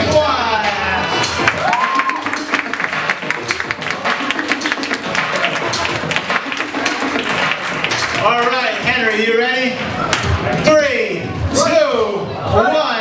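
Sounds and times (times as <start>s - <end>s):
music in a large hall: 0.0s - 13.0s
crowd clapping: 1.3s - 10.3s.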